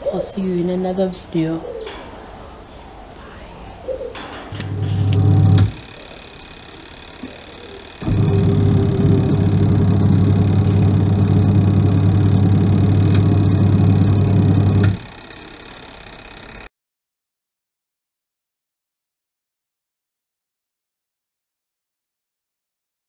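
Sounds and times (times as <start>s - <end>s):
washing machine motor hum: 4.5s - 16.7s.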